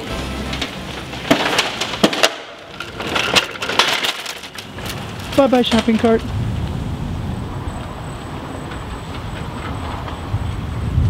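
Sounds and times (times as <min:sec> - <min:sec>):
background music: 0:00.0 - 0:02.6
shopping cart rattling: 0:00.0 - 0:06.3.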